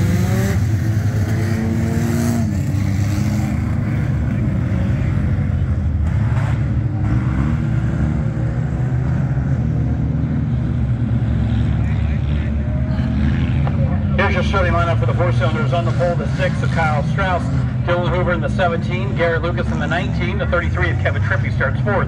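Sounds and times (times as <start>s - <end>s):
race car engines revving: 0.0s - 22.0s.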